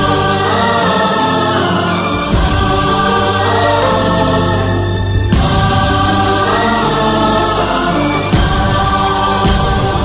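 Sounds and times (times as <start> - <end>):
wordless sustained singing: 0.0 - 10.0.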